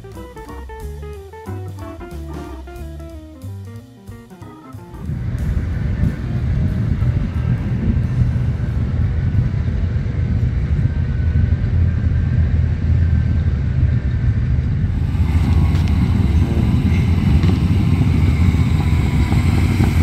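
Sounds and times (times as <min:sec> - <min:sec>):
car engines rumbling: 0:05.0 - 0:20.0.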